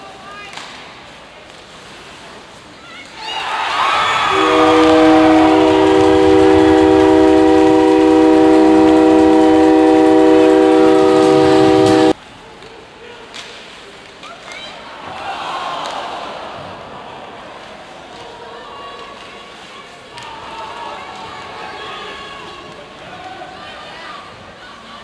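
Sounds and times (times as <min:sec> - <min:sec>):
crowd cheering: 0:03.2 - 0:12.2, 0:15.0 - 0:19.1
goal horn blasting: 0:04.3 - 0:12.2.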